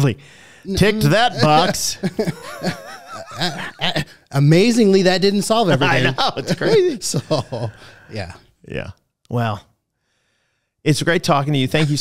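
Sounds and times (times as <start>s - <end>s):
men chuckling and snickering: 1.0s - 4.2s, 5.7s - 8.4s.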